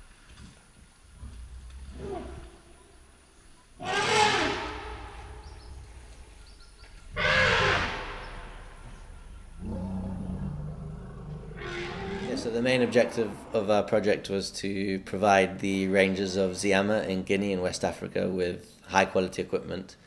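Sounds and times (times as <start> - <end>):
elephant trumpeting: 1.8 - 2.6, 3.8 - 6.2, 7.1 - 13.9.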